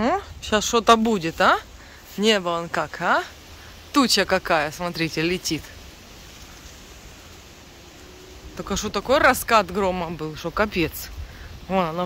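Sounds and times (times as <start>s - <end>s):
faint thunderstorm rushing: 0.0s - 2.2s, 3.1s - 11.8s.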